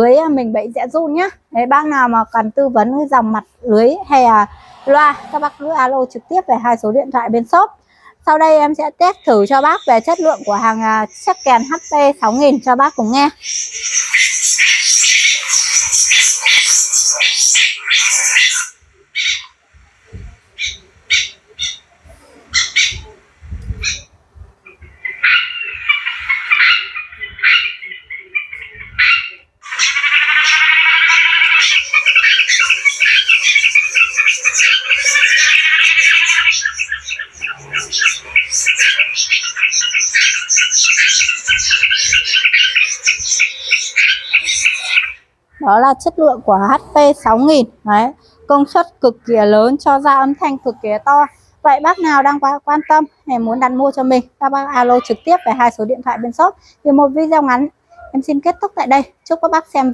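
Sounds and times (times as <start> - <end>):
recorded bird calls through speaker: 0.0 - 59.9.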